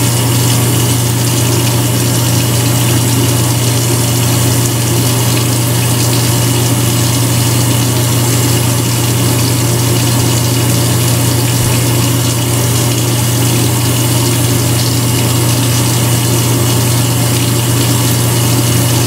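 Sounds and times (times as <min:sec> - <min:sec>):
low machine hum: 0:00.0 - 0:19.0.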